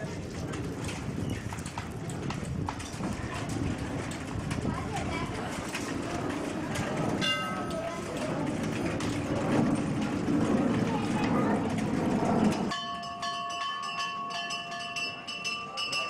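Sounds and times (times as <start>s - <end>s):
rumbling hubbub of voices: 0.0s - 16.0s
bell-like tones ringing: 7.2s - 7.9s, 12.7s - 16.0s.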